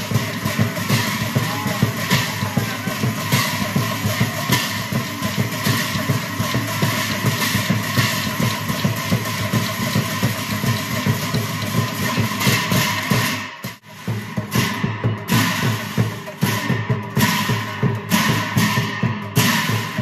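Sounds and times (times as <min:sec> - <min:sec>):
barrel drum: 0:00.0 - 0:20.0
large cymbals clashing: 0:00.0 - 0:20.0.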